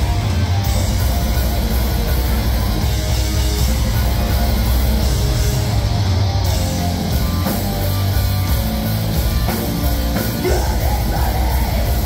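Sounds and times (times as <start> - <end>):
heavy metal band playing: 0.0 - 12.0
singer yelling into microphone: 10.4 - 12.0.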